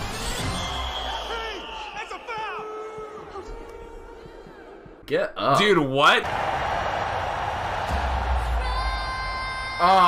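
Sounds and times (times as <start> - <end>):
crowd cheering and calling out: 0.0 - 10.0.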